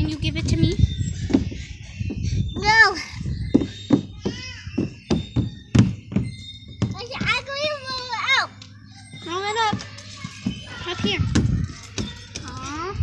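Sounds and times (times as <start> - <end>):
dull thuds: 3.4 - 8.1.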